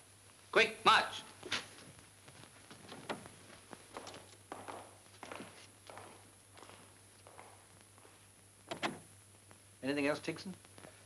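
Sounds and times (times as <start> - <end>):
marching footsteps: 1.4 - 9.0.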